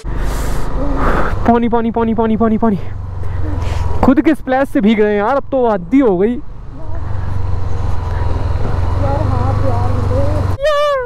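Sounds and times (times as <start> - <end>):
motorcycle engine humming: 0.0 - 11.0
tyres hissing on wet road: 0.1 - 1.4.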